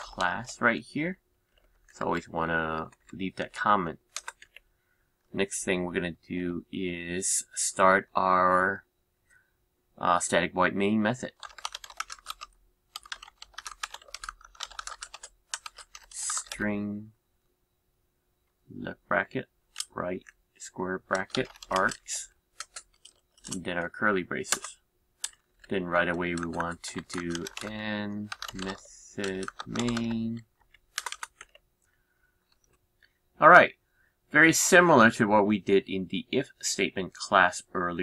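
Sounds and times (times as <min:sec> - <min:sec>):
fast typing on keyboard: 0:00.0 - 0:00.6, 0:01.5 - 0:04.6, 0:11.3 - 0:16.6, 0:21.0 - 0:31.6.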